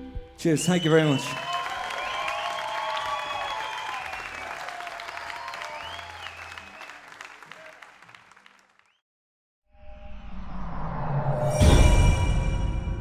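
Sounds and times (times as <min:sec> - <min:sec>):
audience applauding: 0:00.6 - 0:09.0.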